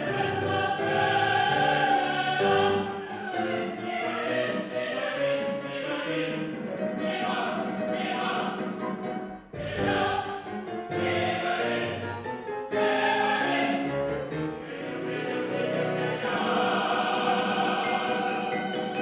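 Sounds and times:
opera chorus singing: 0.0 - 19.0.

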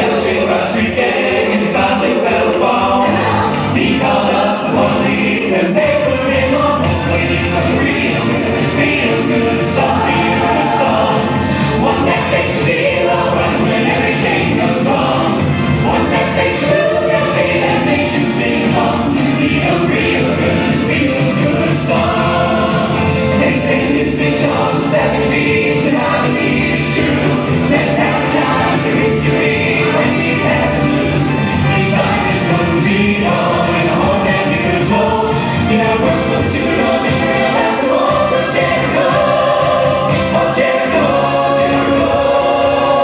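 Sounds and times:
mixed vocal group singing in harmony: 0.0 - 43.0.

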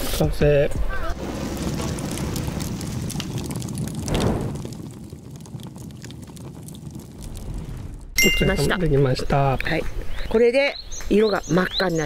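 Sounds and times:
fire-like rush with crackles: 0.0 - 12.0.

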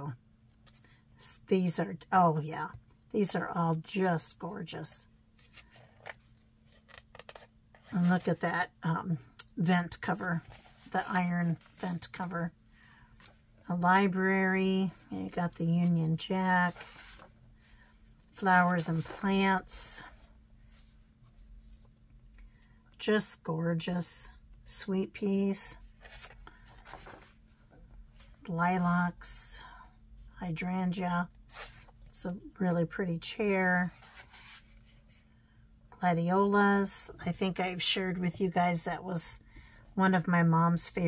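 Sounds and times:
book page turning: 5.4 - 8.4, 10.4 - 12.3, 16.7 - 17.4, 25.9 - 27.6
book pages rustling: 5.4 - 8.4, 10.0 - 12.3, 14.8 - 22.0, 25.8 - 28.5, 33.8 - 35.2.

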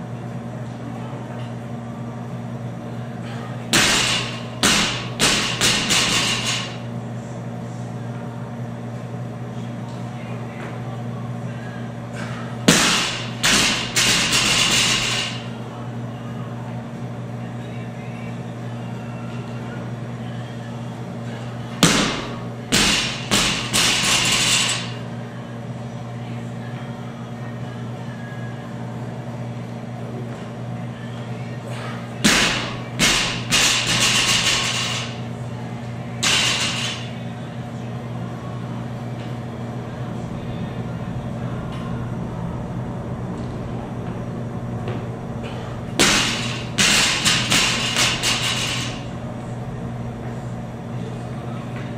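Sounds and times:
steady low hum: 0.0 - 51.9.

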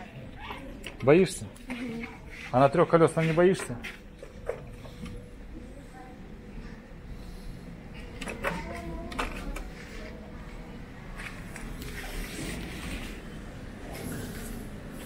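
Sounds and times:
scooter wheels rolling on floor: 8.6 - 15.0.

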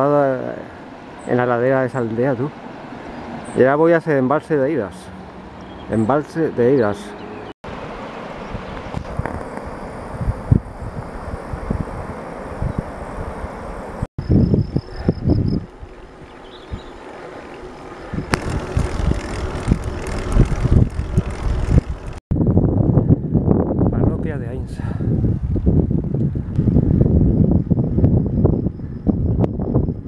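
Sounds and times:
wind buffeting microphone: 8.4 - 30.0.

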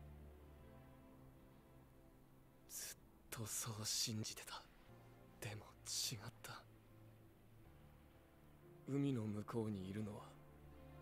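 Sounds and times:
faint background music drone: 0.0 - 11.0
soft spoken dialogue: 2.7 - 6.9, 8.7 - 10.7.

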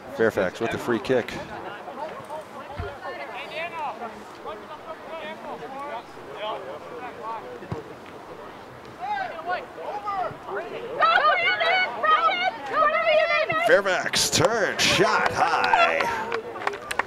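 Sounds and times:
distant shouts and calls: 8.7 - 16.8.

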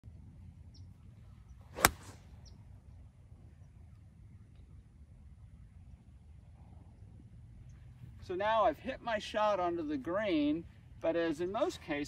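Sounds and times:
golf club swish: 1.6 - 2.4
golf club striking ball: 1.7 - 2.2.

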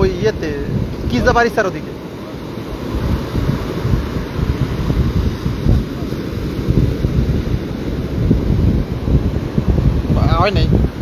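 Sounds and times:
surf breaking: 0.0 - 11.0
wind buffeting microphone: 0.0 - 11.0.

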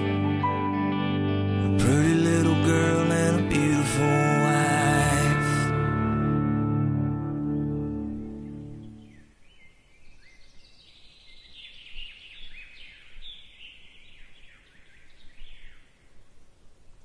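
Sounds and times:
music: 0.0 - 9.1
songbirds chirping: 7.2 - 17.0.

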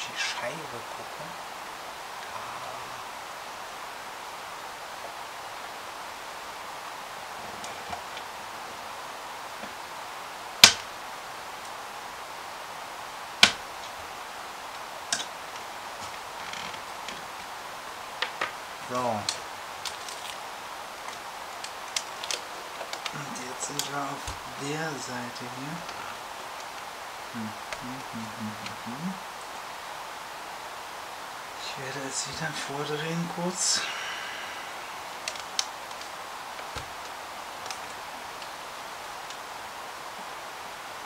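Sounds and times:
steady hiss: 0.0 - 41.0.

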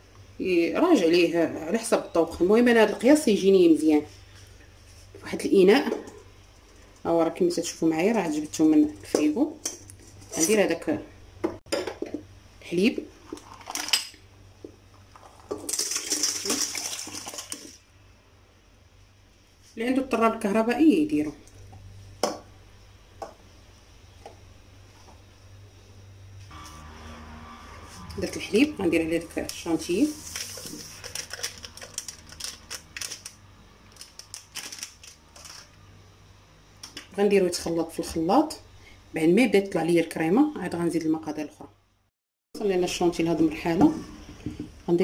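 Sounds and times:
milk pouring into metal bowl: 15.1 - 17.8
plastic sachet crinkling and rustling: 30.2 - 35.7.

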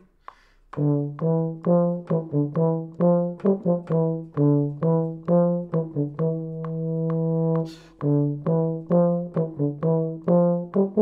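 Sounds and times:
player taking a breath: 0.2 - 0.7, 7.7 - 8.0
solo euphonium playing: 0.7 - 11.0.

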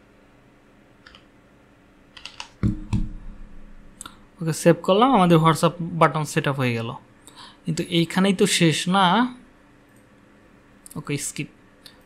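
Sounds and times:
computer keyboard keystrokes: 1.0 - 1.3, 2.2 - 3.0.

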